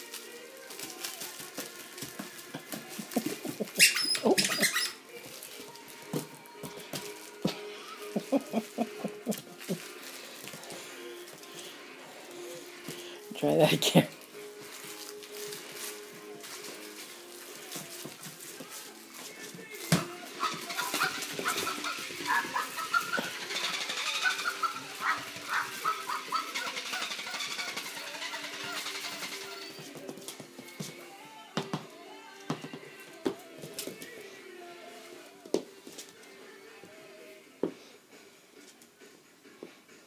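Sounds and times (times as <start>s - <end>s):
background music: 0.0s - 40.0s
toys and paws knocking on tile: 17.7s - 31.0s, 31.6s - 34.1s.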